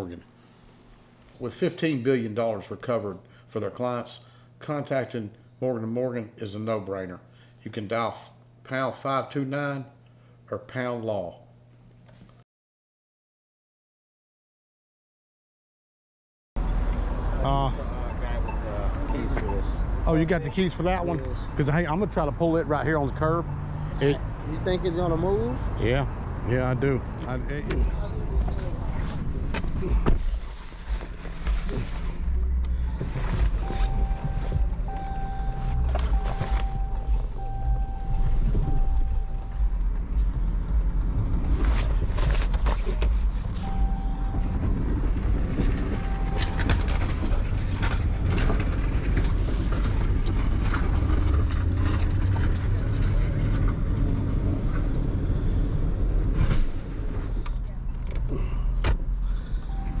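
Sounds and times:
car engine rumbling: 16.6 - 60.0
dashboard warning chime beeping: 18.0 - 21.0, 33.4 - 39.8, 43.5 - 47.4, 59.6 - 60.0.

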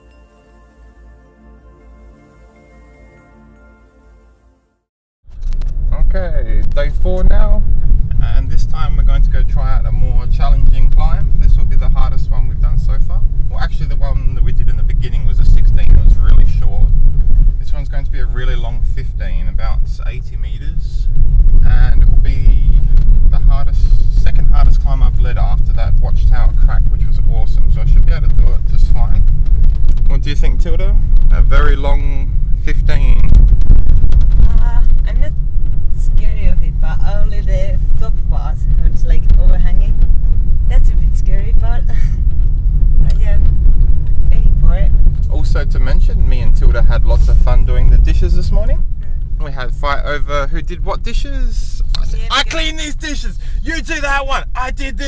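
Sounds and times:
car driving rumble inside cabin: 5.3 - 55.0.

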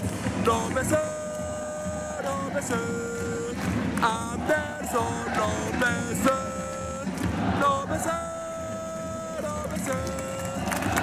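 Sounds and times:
football supporters chanting: 0.0 - 11.0
low crowd background: 0.0 - 11.0.

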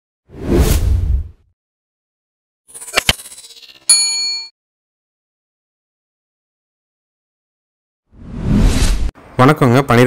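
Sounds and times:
whoosh: 0.3 - 1.4, 8.2 - 9.1.

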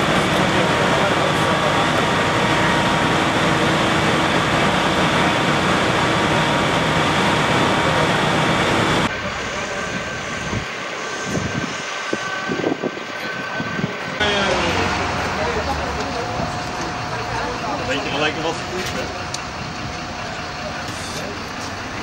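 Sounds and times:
loud machinery engine roar: 0.0 - 22.0
street noise: 0.0 - 22.0.

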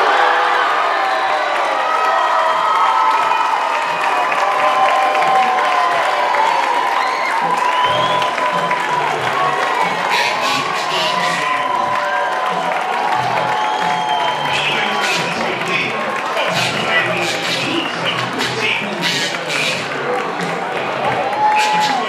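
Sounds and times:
stadium crowd cheering and shouting: 0.0 - 22.0.

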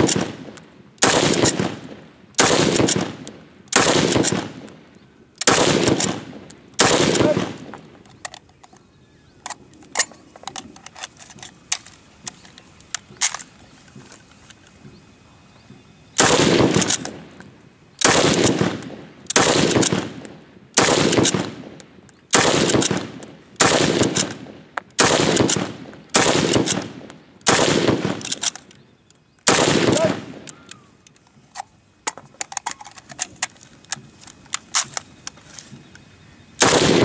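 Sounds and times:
rifle shots with echo: 0.0 - 4.8, 5.4 - 7.9, 16.2 - 17.3, 18.0 - 28.6, 29.4 - 30.7, 36.6 - 37.0.

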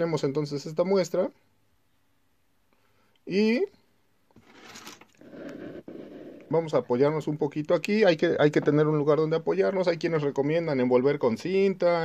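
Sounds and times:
camera handling rubbing and rustling: 4.3 - 5.6.

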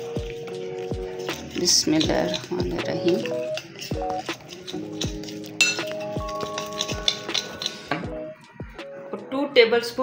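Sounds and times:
metal spoon scraping glass bowl: 0.0 - 8.4
background music with held notes: 0.0 - 10.0.

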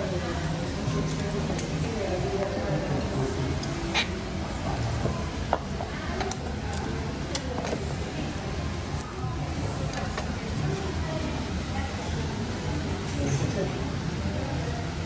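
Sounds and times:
murmur of background voices: 0.0 - 15.0.

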